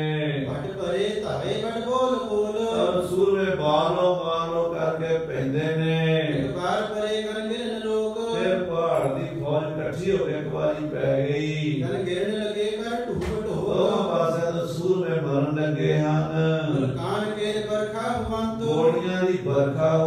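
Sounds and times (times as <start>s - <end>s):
man chanting verses: 0.0s - 20.0s.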